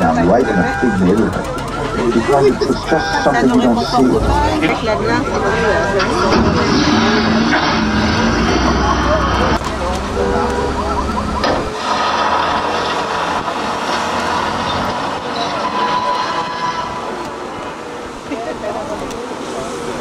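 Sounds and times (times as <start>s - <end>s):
low rumble: 0.0s - 15.3s
indistinct voices: 0.0s - 20.0s
tram rolling: 0.0s - 20.0s.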